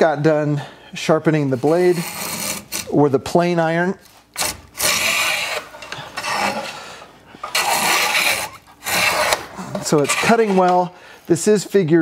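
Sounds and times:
hand plane shaving wood: 1.6s - 2.8s, 4.8s - 6.8s, 7.5s - 10.9s.

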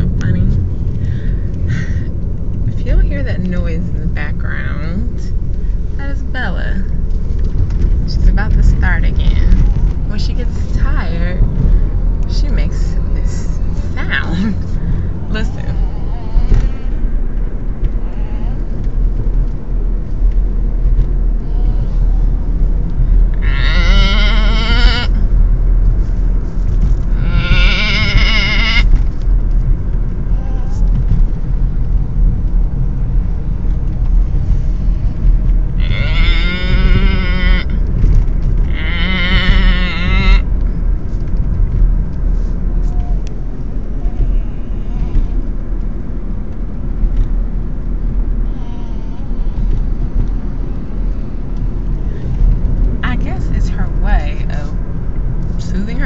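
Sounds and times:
car road noise: 0.0s - 56.0s.

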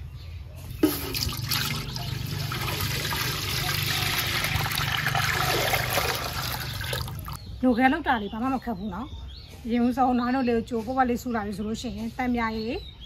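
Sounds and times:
milk pouring into metal basin: 0.7s - 7.4s.

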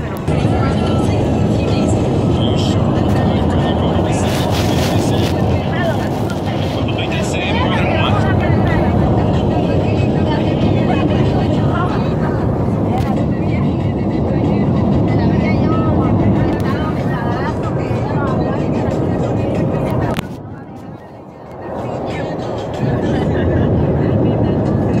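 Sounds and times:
car road noise: 0.0s - 25.0s
muffled voices: 0.0s - 25.0s.

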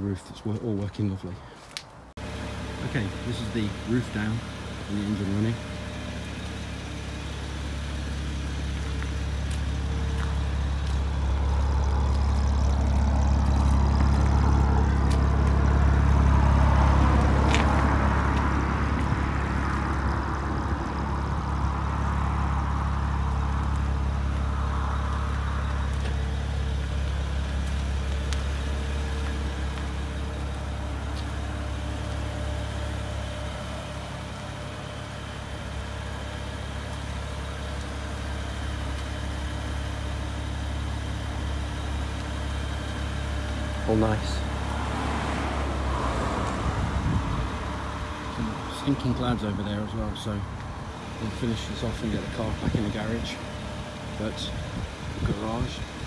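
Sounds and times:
car engine idling: 1.0s - 56.0s.

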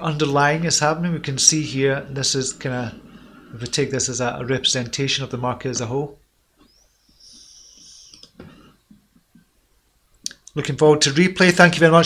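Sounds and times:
man breathing in through nose: 3.0s - 3.6s, 6.7s - 8.8s
faint clicks: 8.1s - 8.5s.

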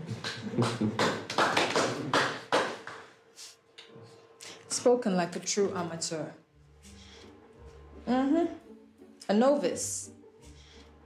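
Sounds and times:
small group applauding: 0.0s - 3.2s.

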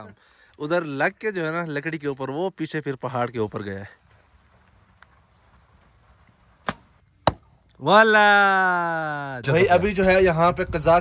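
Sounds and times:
arrow striking foam target: 6.6s - 7.5s
bowstring crack: 6.6s - 7.8s.

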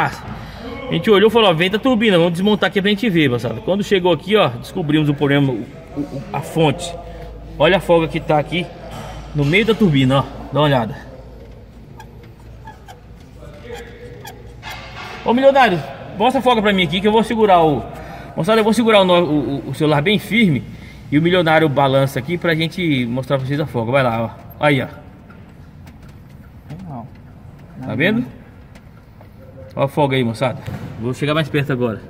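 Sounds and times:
faint distant voices: 0.0s - 31.3s
workshop background noise: 0.0s - 32.0s.

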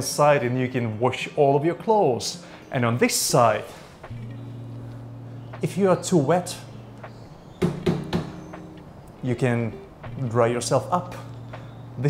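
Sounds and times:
knocks on tumble dryer: 7.6s - 8.6s.

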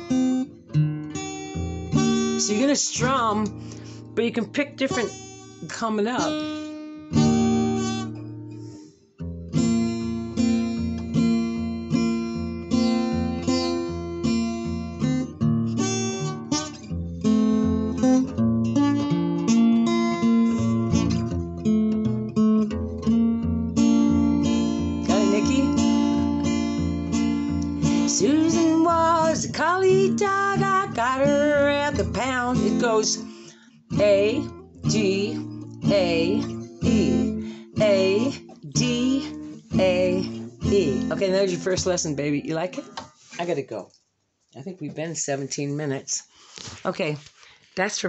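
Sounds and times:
acoustic guitar strumming: 0.0s - 43.6s
person singing: 25.1s - 25.8s, 27.9s - 33.3s, 33.9s - 41.6s.

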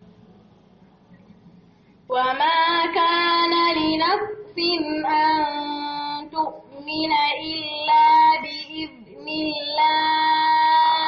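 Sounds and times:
woman chanting melodically: 2.1s - 11.0s.

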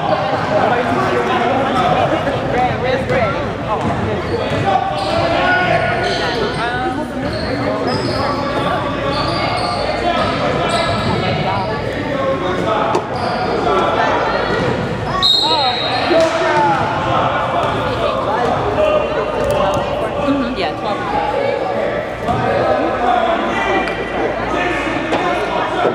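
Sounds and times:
people talking and shouting: 0.0s - 25.9s.

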